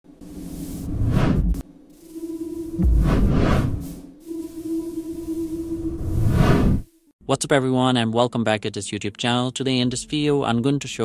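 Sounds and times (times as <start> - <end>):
whoosh sound effect: 2.8 - 4.1, 6.0 - 6.9.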